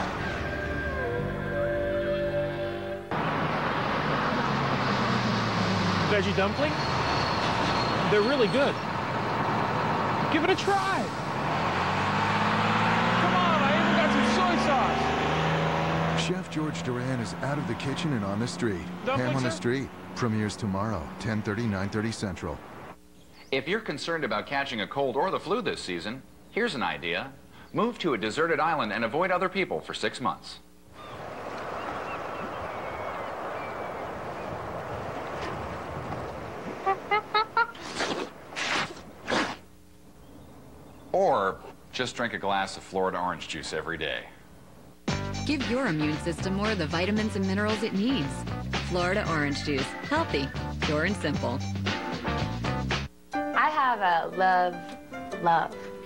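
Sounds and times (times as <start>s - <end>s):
bus engine humming: 0.0s - 23.0s, 31.0s - 38.5s
city street traffic: 0.0s - 23.0s, 31.0s - 37.7s
wind: 0.0s - 45.1s.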